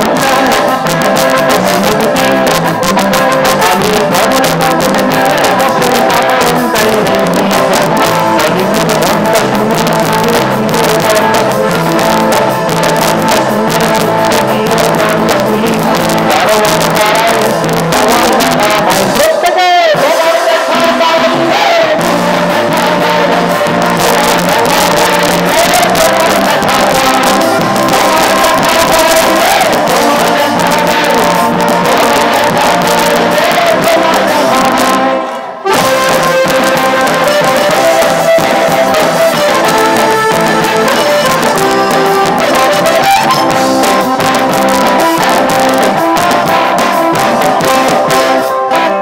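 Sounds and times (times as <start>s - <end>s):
live music with singing: 0.0s - 49.0s.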